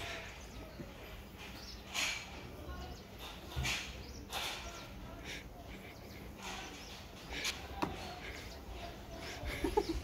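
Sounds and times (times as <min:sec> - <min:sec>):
breathing and mouth noises: 0:05.0 - 0:09.5.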